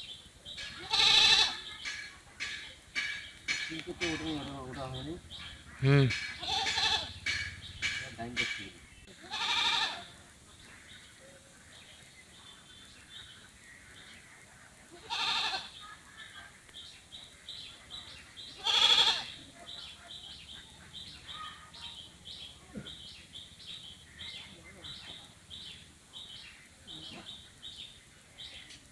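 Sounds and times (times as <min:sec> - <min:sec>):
loud drawn-out animal calls: 0:05.2 - 0:08.6, 0:18.6 - 0:19.4.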